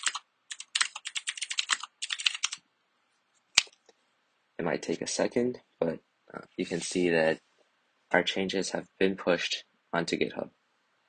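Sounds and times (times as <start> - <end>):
typing on computer keyboard: 0.0 - 2.6.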